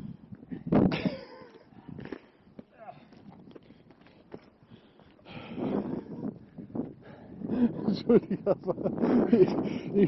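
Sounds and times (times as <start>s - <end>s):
footsteps on rock: 1.5s - 5.2s.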